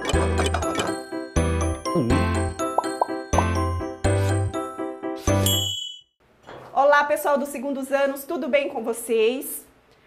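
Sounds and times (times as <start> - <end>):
upbeat jingle with chimes: 1.1 - 6.2.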